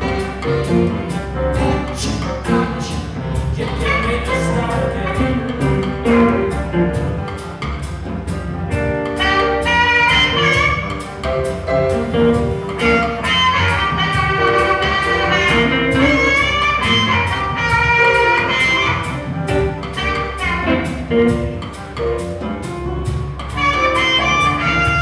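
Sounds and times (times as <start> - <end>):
saxophone: 0.0 - 7.8, 8.6 - 25.0
drums on a steady beat: 0.0 - 25.0.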